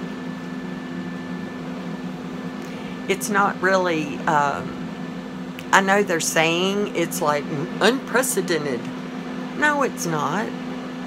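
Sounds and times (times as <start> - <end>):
electric fan motor hum: 0.0 - 11.0
faint high whine: 0.0 - 11.0.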